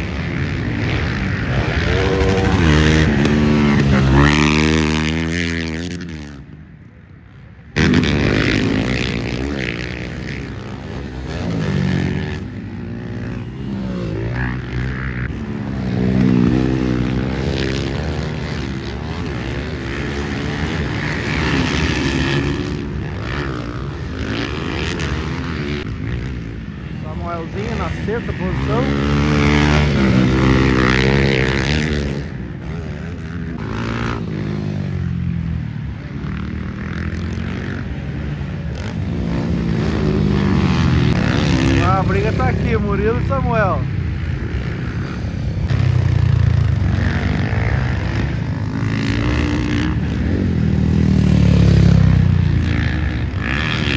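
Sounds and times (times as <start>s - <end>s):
dirt bike engines revving: 0.0s - 53.9s.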